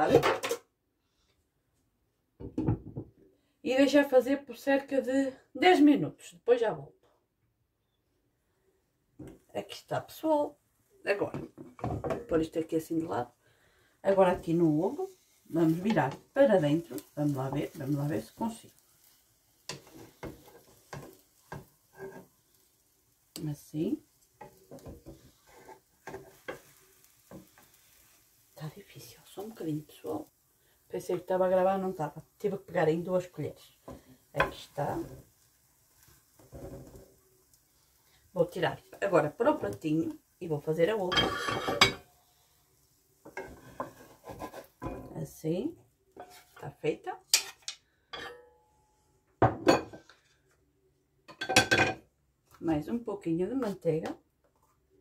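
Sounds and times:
spatula scraping a frying pan: 14.2 - 22.9, 24.2 - 28.5, 33.8 - 37.2, 41.1 - 45.1, 46.2 - 46.6
kitchen utensils clinking: 41.1 - 42.1, 47.3 - 48.6.

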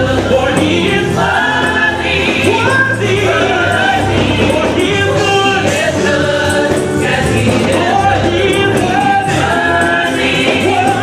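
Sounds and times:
man singing lead: 0.0 - 11.0
women's choir singing: 0.0 - 11.0.

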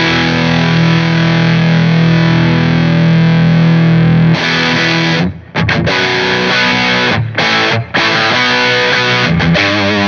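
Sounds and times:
distorted electric guitar chord: 0.0 - 10.0.

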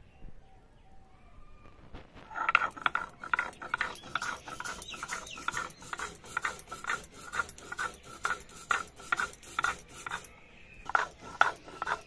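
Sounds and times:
stone roller grating scrape: 2.2 - 12.0.

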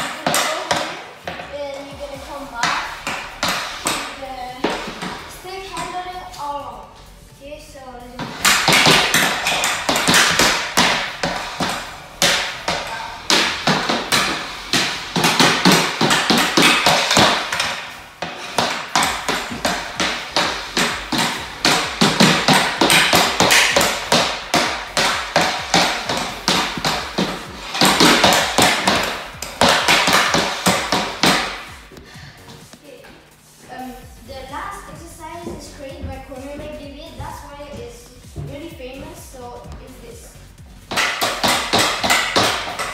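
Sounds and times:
hockey stick clacking puck on hardwood: 0.0 - 1.5, 2.6 - 6.0, 8.2 - 32.8, 40.9 - 42.9.

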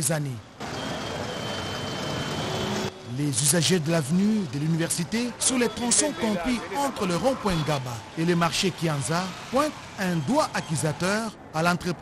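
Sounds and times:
vehicle engine and tyre noise: 0.5 - 12.0.

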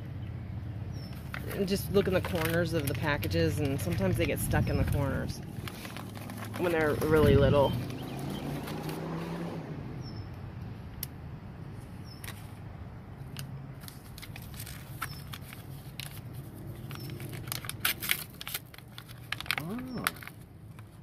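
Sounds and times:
paper packets crinkling: 1.1 - 9.0, 13.3 - 21.0.

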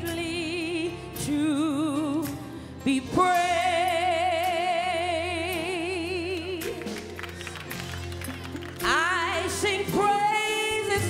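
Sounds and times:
woman singing gospel: 0.0 - 6.8, 8.8 - 11.0.

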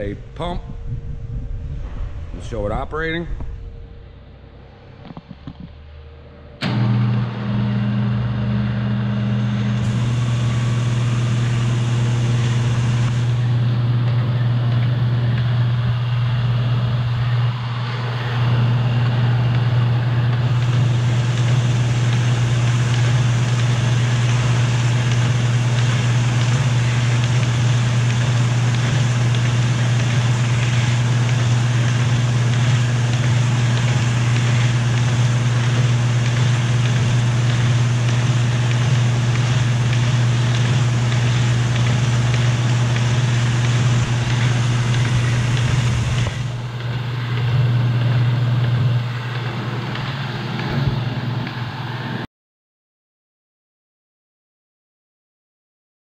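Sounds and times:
paper folder motor hum: 6.6 - 52.2
rollers and paper clattering: 20.3 - 51.1.

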